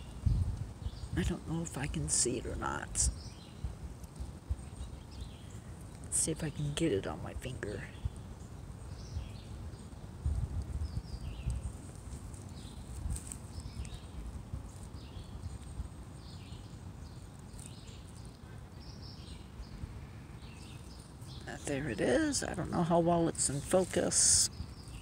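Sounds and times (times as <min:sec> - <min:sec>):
low rumbling microphone noise: 0:00.0 - 0:25.0
small birds chirping: 0:00.0 - 0:25.0.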